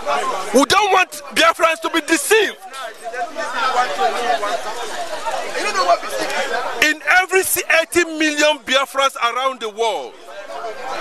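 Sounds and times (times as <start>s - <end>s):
babble of overlapping voices: 0.0s - 11.0s
man talking: 0.5s - 2.8s, 6.8s - 10.1s.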